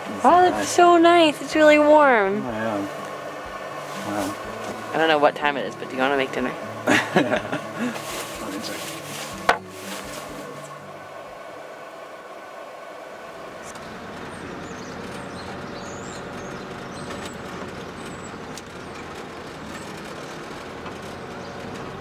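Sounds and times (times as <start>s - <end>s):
road noise: 0.0s - 22.0s
vehicle engine: 0.0s - 22.0s.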